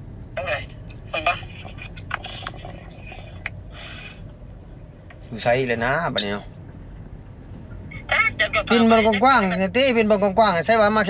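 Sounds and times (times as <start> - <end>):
car cabin hum: 0.0 - 11.0.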